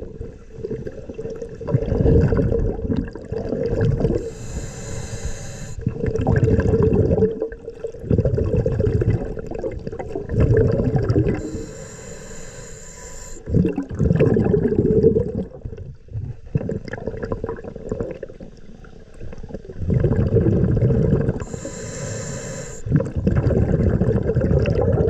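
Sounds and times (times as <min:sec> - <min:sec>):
exhaled bubbles gurgling underwater: 0:00.0 - 0:25.0
regulator hiss of inhaled breath: 0:04.1 - 0:05.9, 0:11.3 - 0:13.5, 0:21.4 - 0:22.9.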